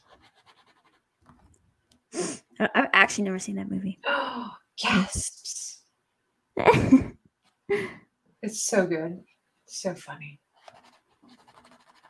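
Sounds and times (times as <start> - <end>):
faint light scratching: 10.6 - 12.0.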